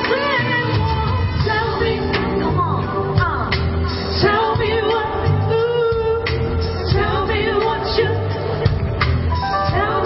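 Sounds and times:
woman singing: 0.0 - 8.7, 9.5 - 10.0
backing band with bass and drums: 0.0 - 10.0.

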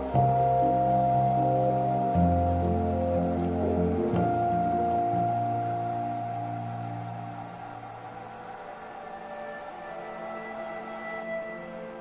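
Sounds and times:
soft ambient music: 0.0 - 12.0.

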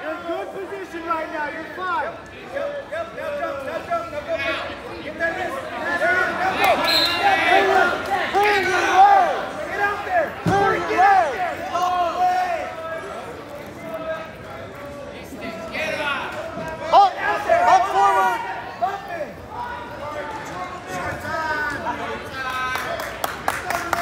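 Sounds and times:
spectators and coaches shouting: 0.0 - 14.4, 15.3 - 22.7.

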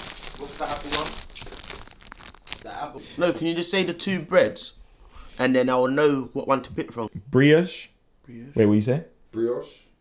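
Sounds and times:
plastic packaging crinkling: 0.0 - 3.8.

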